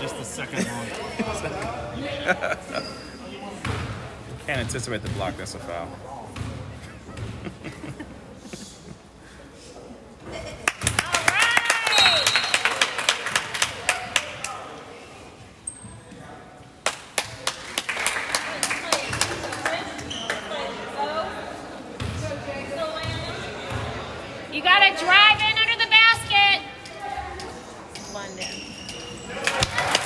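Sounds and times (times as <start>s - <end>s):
spectators' voices: 0.0s - 15.6s, 16.4s - 30.0s.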